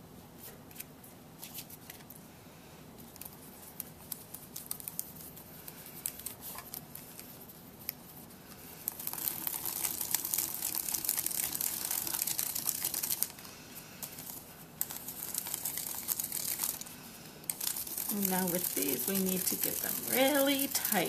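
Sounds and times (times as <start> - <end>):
paper petals rustling and crinkling: 3.0 - 21.0.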